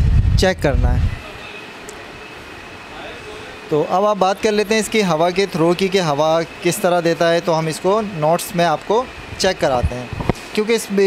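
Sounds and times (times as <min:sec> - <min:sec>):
air cooler blowers rushing: 0:00.0 - 0:11.0.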